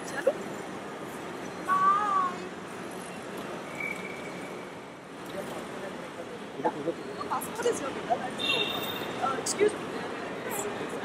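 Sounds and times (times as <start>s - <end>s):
background noise: 0.0s - 11.0s.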